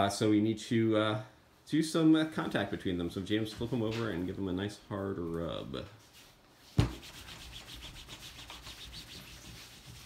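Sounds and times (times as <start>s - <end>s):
cloth rubbing on cloth: 6.0s - 10.0s.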